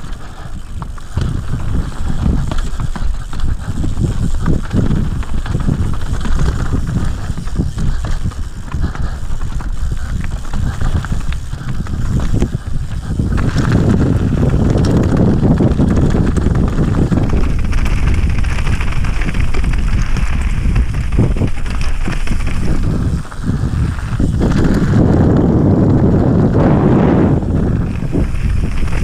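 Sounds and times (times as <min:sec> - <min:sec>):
bike knocks and rattles: 0:00.0 - 0:29.0
tyre noise on gravel: 0:00.0 - 0:29.0
wind on microphone: 0:00.0 - 0:29.0.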